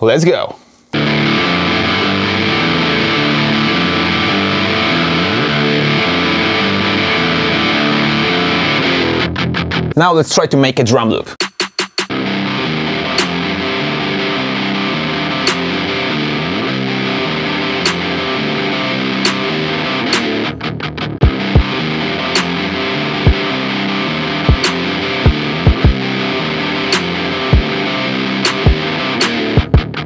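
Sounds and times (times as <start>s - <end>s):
distorted electric guitar chords: 1.0s - 10.0s, 12.1s - 30.0s
sharp hit: 13.2s - 13.5s, 15.5s - 15.8s, 19.2s - 19.5s, 22.4s - 22.7s.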